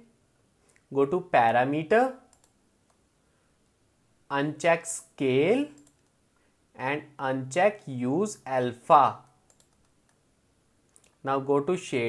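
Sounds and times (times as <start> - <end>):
person speaking: 0.8 - 2.4, 4.3 - 6.0, 6.8 - 9.4, 11.0 - 12.0
computer mouse clicks: 2.3 - 3.0, 5.8 - 6.2, 9.5 - 10.2, 10.9 - 11.2.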